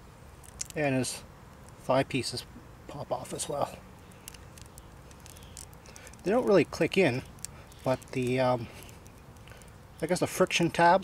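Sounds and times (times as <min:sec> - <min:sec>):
light plastic clicks and rubbing: 0:04.0 - 0:10.1.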